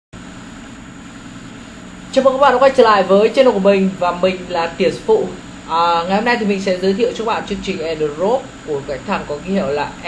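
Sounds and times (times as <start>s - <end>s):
faint low hum: 0.2s - 10.0s.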